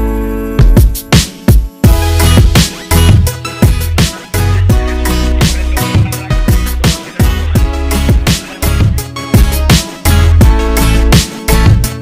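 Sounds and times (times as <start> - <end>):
electronic dance music: 0.0 - 12.0
driving drum beat: 0.6 - 12.0
deep bass: 1.9 - 12.0.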